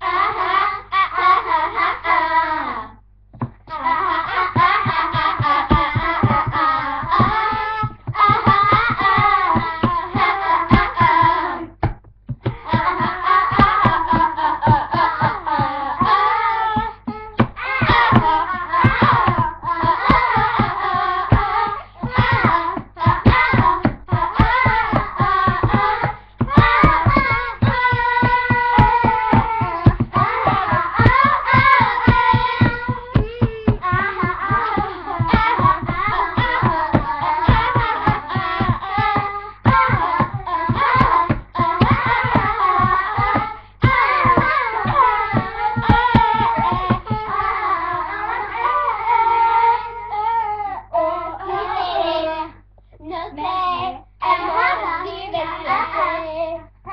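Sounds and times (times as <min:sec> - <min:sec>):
children singing: 0:00.0 - 0:02.9, 0:03.7 - 0:11.7, 0:12.4 - 0:52.6, 0:53.6 - 0:56.9
pop song with steady beat: 0:04.2 - 0:48.6.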